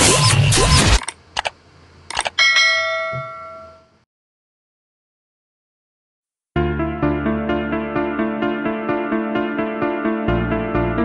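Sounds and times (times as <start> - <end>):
bright bell ding: 2.4 - 3.9.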